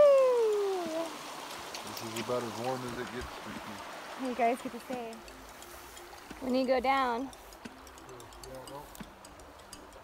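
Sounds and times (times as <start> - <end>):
girl's drawn-out cry: 0.0 - 0.8.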